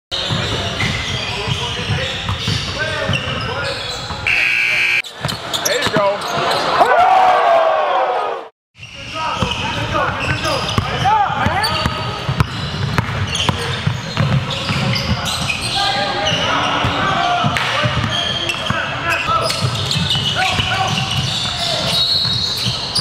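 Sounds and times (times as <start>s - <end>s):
sneakers squeaking on court: 0.1s - 6.8s, 8.8s - 23.0s.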